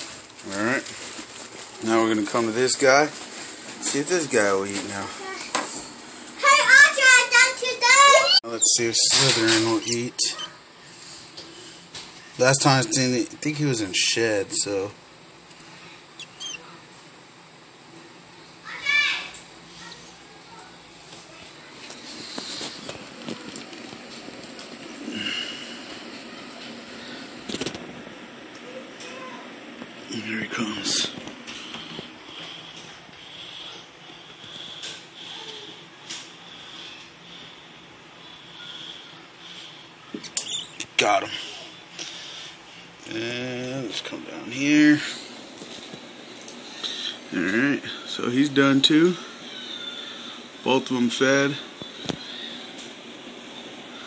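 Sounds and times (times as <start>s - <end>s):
rat squeaking: 9.8s - 10.6s, 16.2s - 16.8s, 40.2s - 40.8s.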